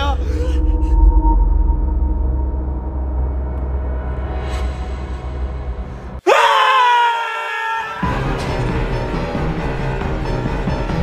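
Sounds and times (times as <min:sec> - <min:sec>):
low steady drone: 0:00.0 - 0:06.1
men screaming in fright: 0:06.2 - 0:08.2.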